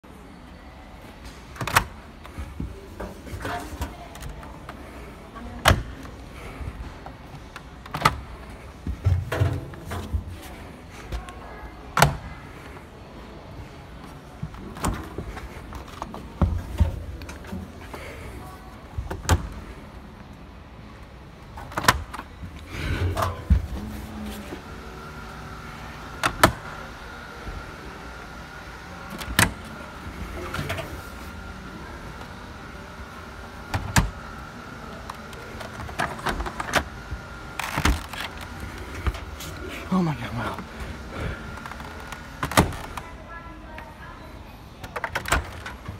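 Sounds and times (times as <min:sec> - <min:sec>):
washing machine drums whirring: 0:01.1 - 0:43.3.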